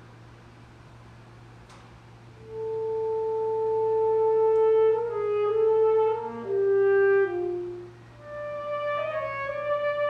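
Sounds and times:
alto saxophone long note: 2.4 - 10.0.

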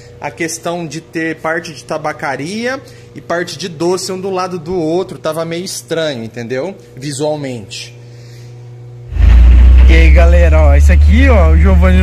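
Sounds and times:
faint steady hum: 0.0 - 12.0
pickup truck engine rumble: 9.1 - 12.0.

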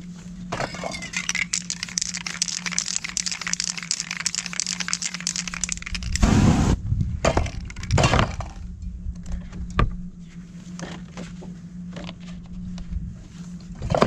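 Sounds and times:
spray paint can hissing: 1.2 - 6.5.

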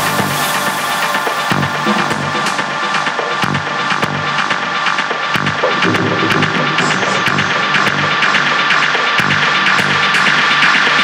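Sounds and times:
techno music with kick drum: 0.0 - 11.0.

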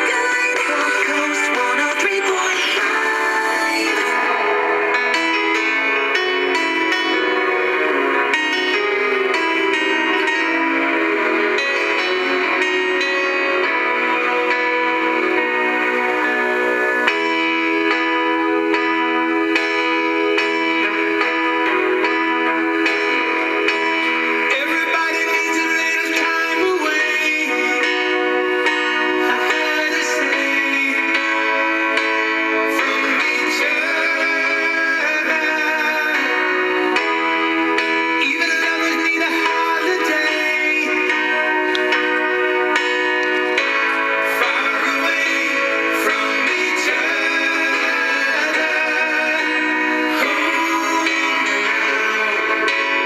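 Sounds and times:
bell-like keyboard chords on radio: 0.0 - 53.0.

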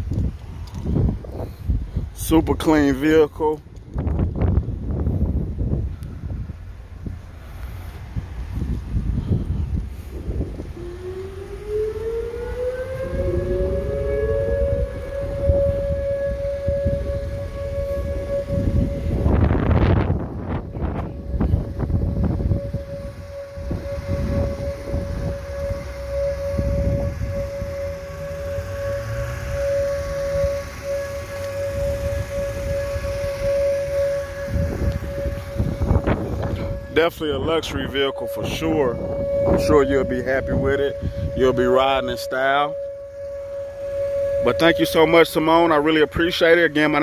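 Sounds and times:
second rising siren tone: 0.0 - 47.0
wind buffeting microphone: 0.0 - 47.0
warning siren winding up: 0.1 - 1.5, 9.6 - 47.0.

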